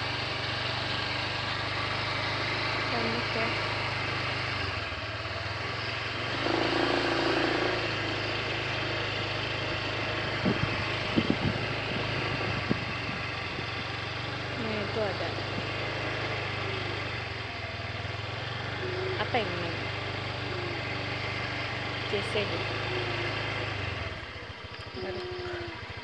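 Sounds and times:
faint voices: 18.8 - 19.8, 25.0 - 25.8.

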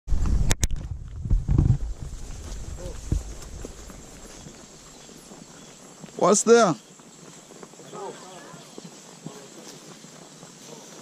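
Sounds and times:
soft hoofbeats on dirt: 0.1 - 11.0.

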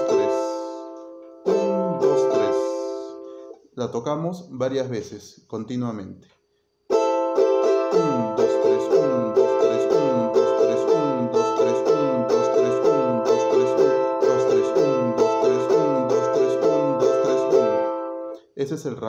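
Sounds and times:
charango strummed: 0.0 - 3.6, 6.9 - 18.4.

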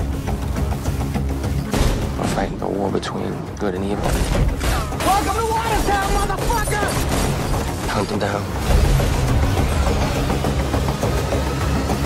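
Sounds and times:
dramatic film score music: 0.0 - 12.0.

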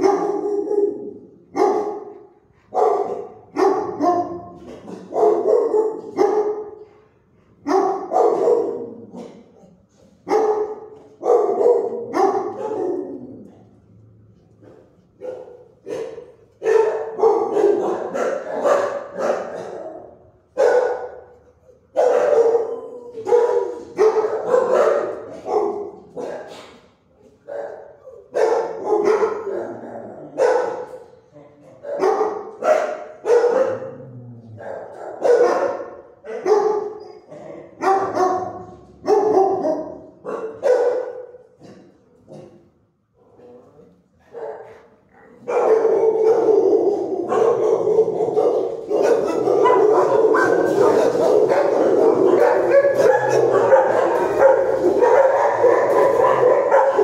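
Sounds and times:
dogs barking with echoes: 0.0 - 42.8, 44.1 - 57.0.

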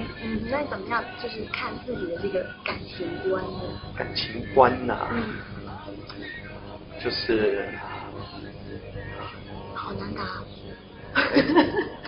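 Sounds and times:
faint vocal sound: 0.0 - 12.0
soft background music: 0.0 - 12.0.

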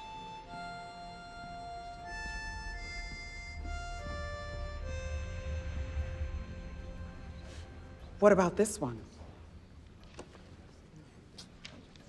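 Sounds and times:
harmonica melody: 0.0 - 8.5
low rumble: 1.8 - 10.0.

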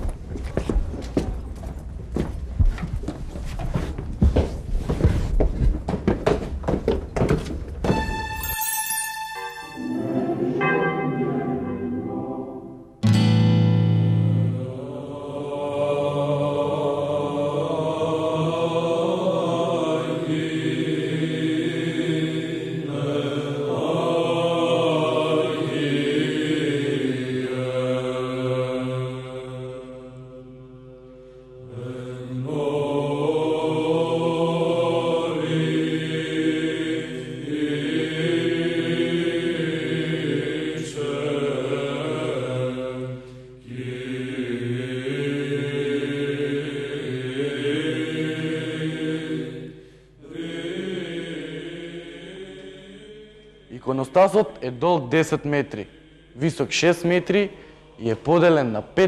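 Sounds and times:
church chant: 7.9 - 13.1, 14.4 - 59.0.

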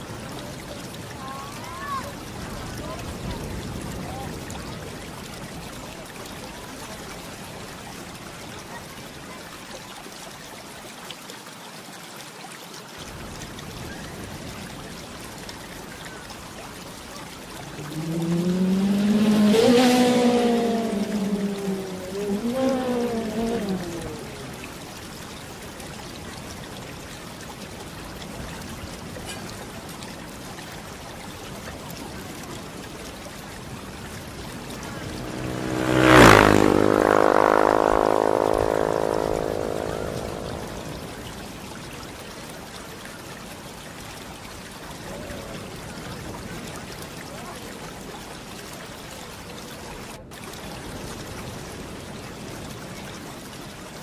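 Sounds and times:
water trickling: 0.0 - 54.0
wavering pitched tone: 34.7 - 41.5.

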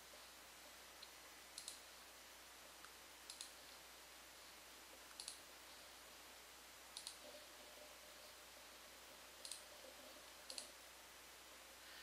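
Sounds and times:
faint room hiss: 0.0 - 12.0
small sharp clicks: 1.0 - 1.8, 2.8 - 3.7, 5.1 - 5.5, 6.9 - 7.2, 9.4 - 9.7, 10.4 - 10.8.

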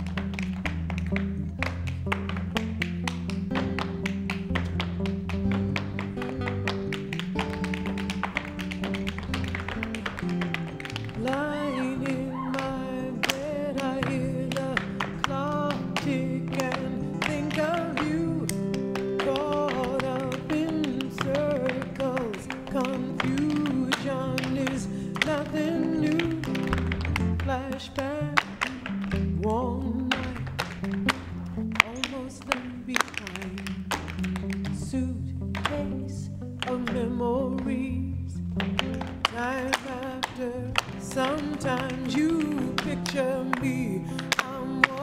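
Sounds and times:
tap shoes clicking on stage: 0.0 - 29.4, 30.0 - 34.9, 38.6 - 45.0
instrumental backing track: 0.0 - 45.0
slow song with singing: 11.0 - 30.8, 31.8 - 33.9, 34.5 - 38.6, 39.2 - 45.0.

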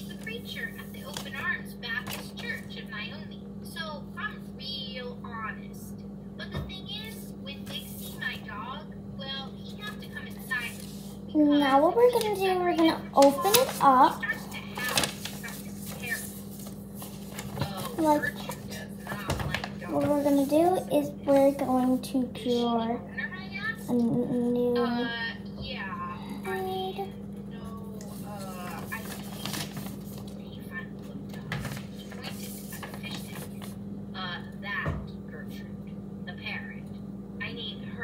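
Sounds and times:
paper crackling and rustling: 0.0 - 2.7, 7.6 - 8.4, 9.9 - 22.0, 28.0 - 33.8
steady low hum: 0.0 - 38.0.

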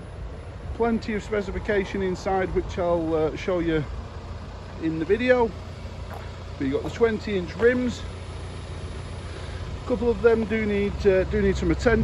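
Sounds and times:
vehicle engine idling: 0.0 - 12.0
man's voice: 6.6 - 8.1.

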